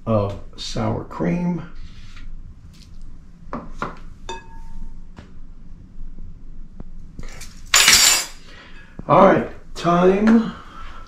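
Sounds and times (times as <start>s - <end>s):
metal spoon clinking on dishware: 7.8s - 8.4s.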